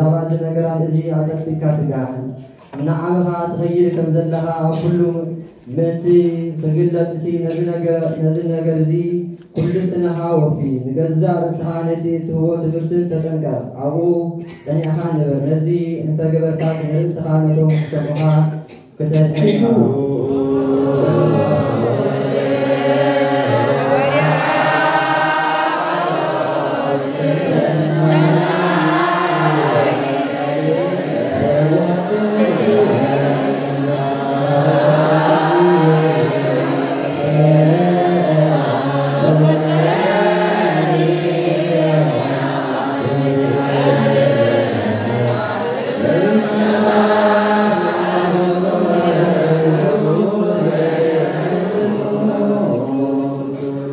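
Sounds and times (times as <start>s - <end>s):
group of voices chanting in unison: 20.0s - 53.9s.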